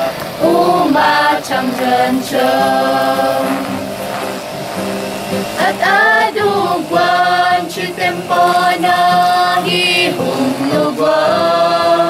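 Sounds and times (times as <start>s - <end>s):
acoustic guitar: 0.0s - 12.0s
choir singing gospel song: 0.0s - 12.0s.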